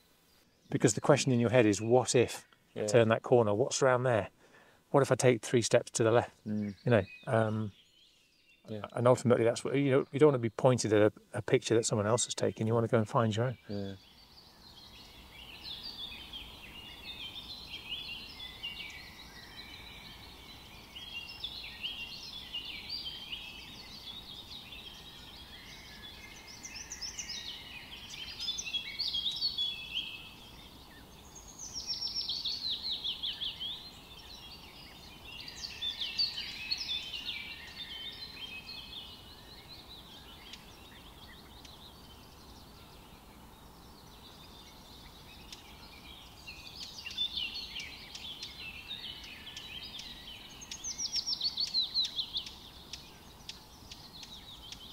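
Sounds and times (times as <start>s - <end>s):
songbirds chirping and trilling: 0.0s - 54.9s.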